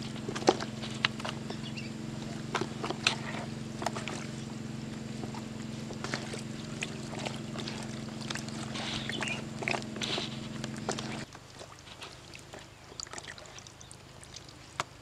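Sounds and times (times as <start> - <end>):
hands squelching through raw fish: 0.0 - 15.0
steady low hum: 0.0 - 15.0.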